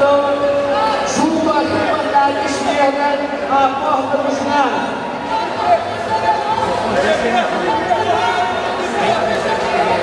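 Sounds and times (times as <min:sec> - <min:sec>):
crowd chatter in a large hall: 0:00.0 - 0:10.0.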